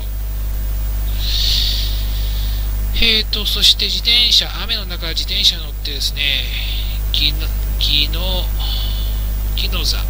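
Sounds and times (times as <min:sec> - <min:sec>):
low electrical hum: 0:00.0 - 0:10.0
breath into microphone: 0:01.1 - 0:02.8, 0:06.5 - 0:07.0, 0:08.6 - 0:09.3.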